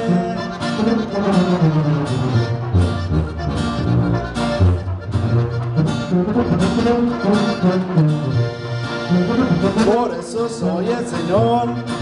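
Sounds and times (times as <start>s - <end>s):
saxophone: 0.0s - 9.8s
accordion: 0.0s - 12.0s
strummed guitar: 0.0s - 12.0s
tuba bass line: 0.0s - 12.0s.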